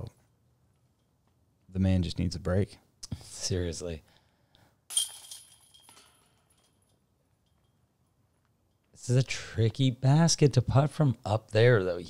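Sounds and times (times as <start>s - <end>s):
disc striking metal chains: 4.9s - 7.0s.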